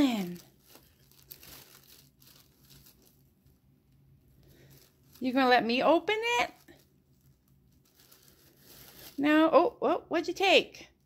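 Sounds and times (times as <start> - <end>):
paper crinkling in cardboard box: 0.0 - 3.6, 4.4 - 9.3
low steady hum: 0.0 - 11.0.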